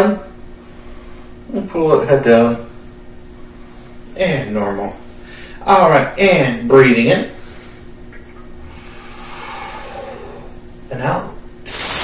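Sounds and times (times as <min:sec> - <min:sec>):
faint room hum: 0:00.0 - 0:12.0
man breathing in deeply: 0:05.2 - 0:05.6, 0:08.7 - 0:10.6.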